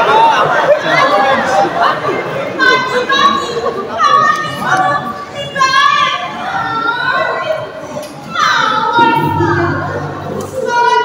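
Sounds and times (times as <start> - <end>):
actors' high-pitched voices: 2.5 - 11.0.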